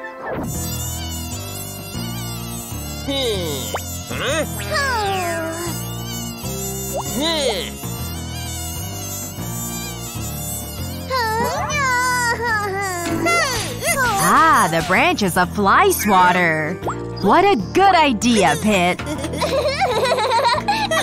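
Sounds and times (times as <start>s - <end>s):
cartoon mosquito swarm buzzing: 0.3s - 16.3s, 18.2s - 21.0s.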